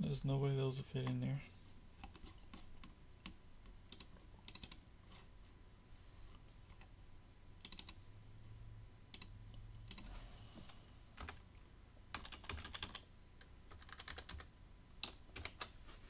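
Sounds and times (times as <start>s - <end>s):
keyboard typing clicks: 3.2s - 4.8s, 7.6s - 8.0s, 12.1s - 15.7s.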